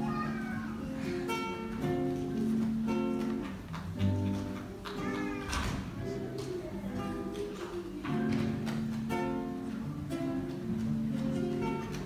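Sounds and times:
strummed acoustic guitar: 0:00.0 - 0:12.0
small group singing: 0:04.9 - 0:08.9.

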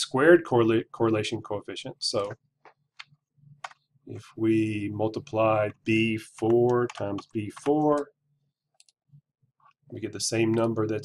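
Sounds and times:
computer mouse clicks: 0:02.1 - 0:03.8, 0:06.5 - 0:08.0.

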